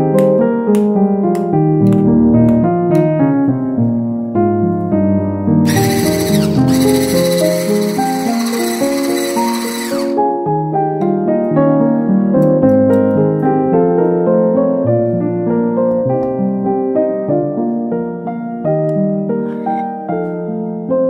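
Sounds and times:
solo piano music: 0.0s - 5.9s, 10.1s - 21.0s
electric hand mixer whining: 5.7s - 10.2s.

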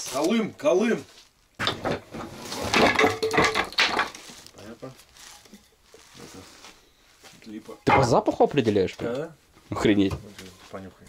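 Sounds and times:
wooden boards knocking together: 1.6s - 4.4s.

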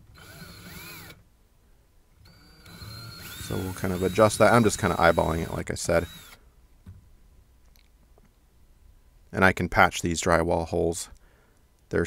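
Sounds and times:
cordless drill motor whine: 0.0s - 1.2s, 2.2s - 6.4s.

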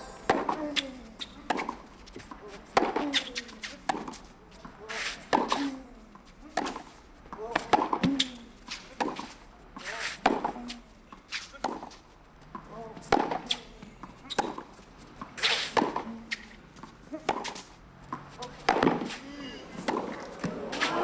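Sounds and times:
racket striking tennis ball: 0.0s - 3.2s, 13.1s - 13.6s, 18.6s - 21.0s.

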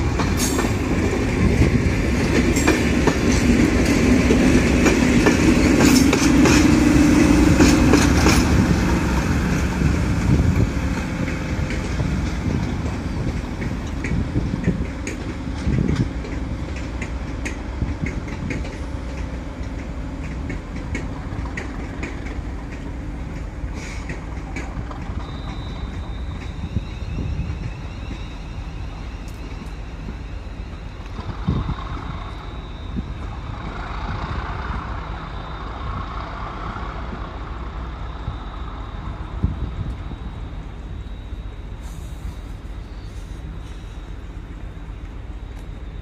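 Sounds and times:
light clicks of train: 0.0s - 46.0s
train moving with low drone: 0.0s - 46.0s.

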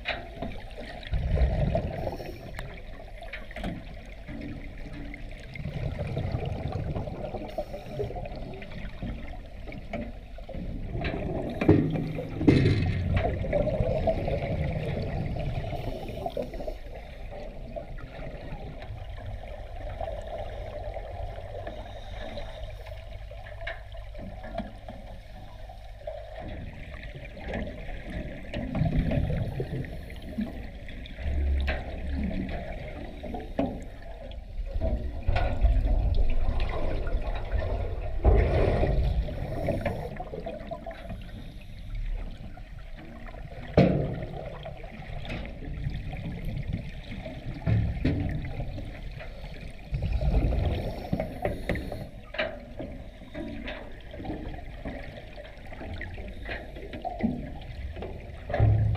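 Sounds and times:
water surging underwater: 0.0s - 58.9s.

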